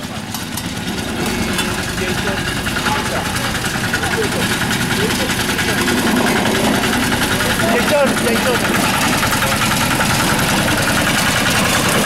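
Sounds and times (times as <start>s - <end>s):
roller compactor engine running: 0.0s - 12.0s.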